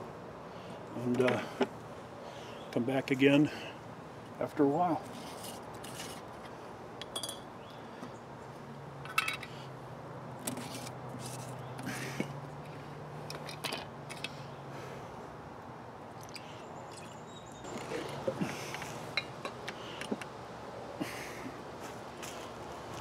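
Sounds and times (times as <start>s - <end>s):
metal lids clinking on glass jars: 7.0s - 7.5s, 9.0s - 9.6s.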